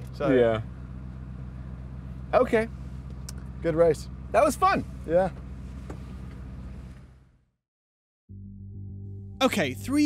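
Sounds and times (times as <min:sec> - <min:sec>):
car cabin hum and hiss: 0:00.0 - 0:07.4.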